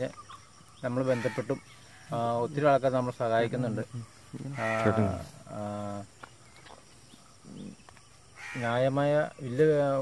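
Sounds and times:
man speaking: 0.8 - 6.1.

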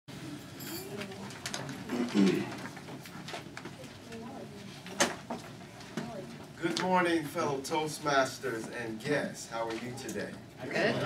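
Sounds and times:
murmur of voices: 0.1 - 11.0.

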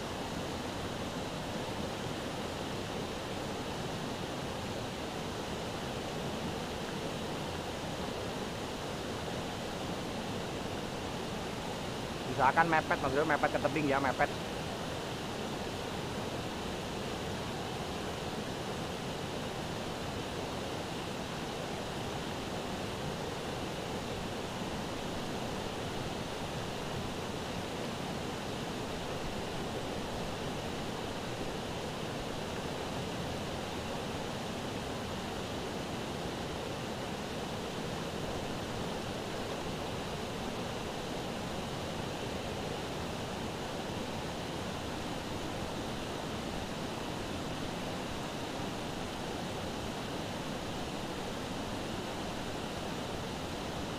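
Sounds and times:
river rushing over rapids: 0.0 - 53.9.

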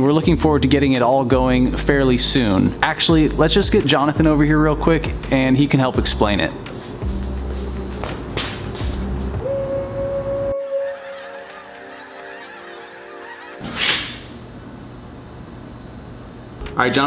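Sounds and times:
funnel blown like a horn: 9.4 - 11.3.

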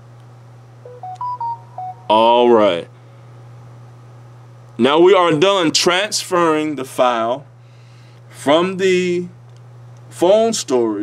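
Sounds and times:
phone electronic beeps: 0.9 - 2.2.

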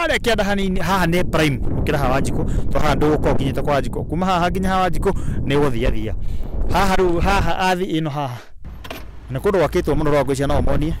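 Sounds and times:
man talking: 0.0 - 8.5, 9.3 - 11.0.

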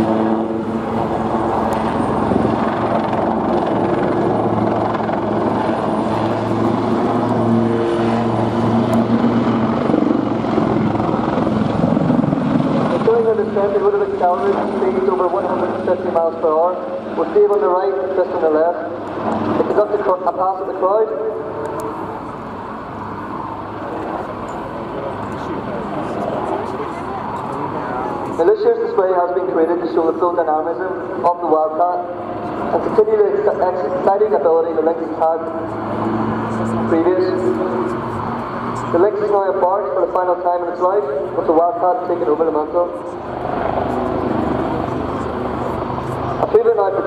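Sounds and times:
helicopter flying past: 0.0 - 47.0.

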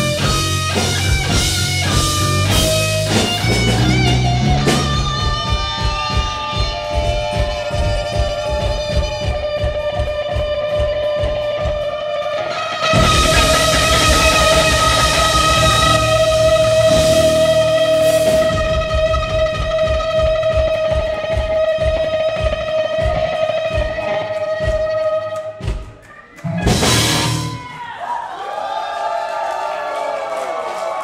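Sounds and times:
drum kit hits: 0.0 - 11.7, 12.8 - 27.7
electric guitar sustained note: 12.5 - 19.4
big final crash: 13.0 - 18.6.

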